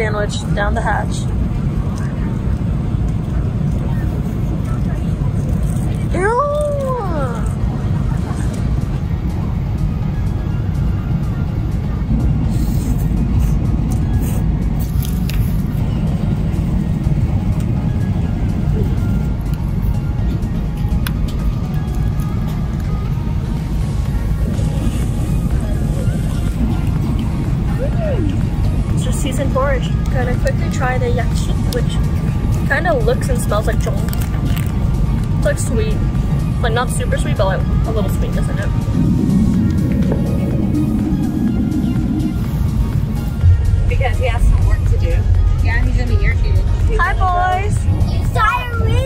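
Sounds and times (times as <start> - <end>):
airliner cabin drone: 0.0 - 49.0
background music: 0.0 - 49.0.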